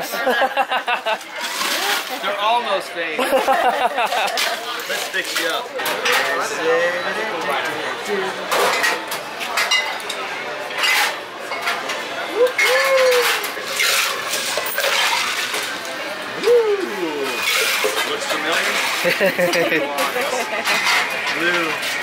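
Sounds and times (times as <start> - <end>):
ice clinking: 13.2 - 15.8.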